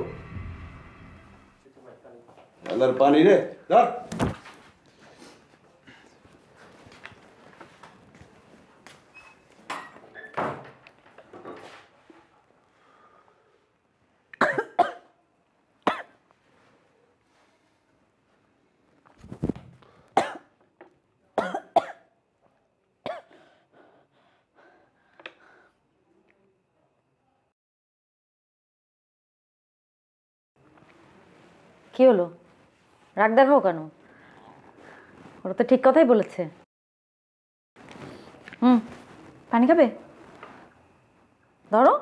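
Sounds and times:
person coughing: 14.4s - 15.1s, 21.4s - 22.0s
soft rustles: 37.8s - 41.3s.

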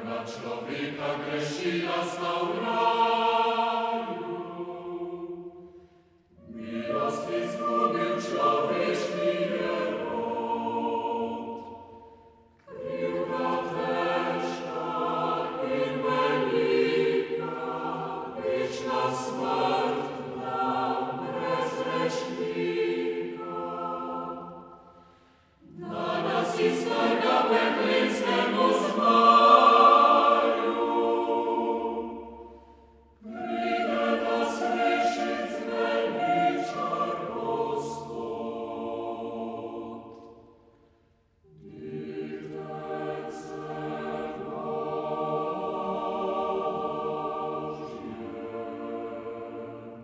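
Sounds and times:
chamber choir singing a hymn: 0.0s - 40.6s, 41.4s - 50.0s.

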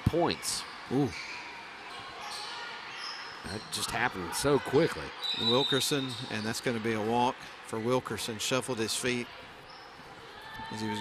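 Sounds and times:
basketball game crowd and court noise: 0.0s - 11.0s.

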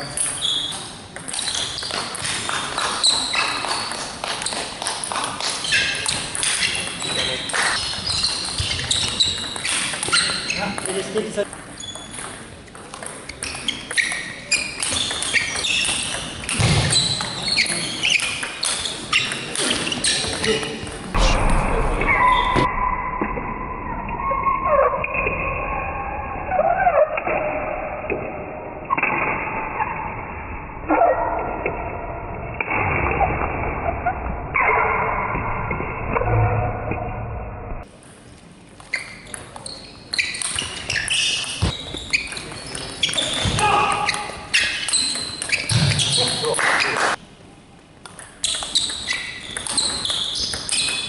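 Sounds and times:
sudden loud ringing bangs: 21.2s - 23.7s.

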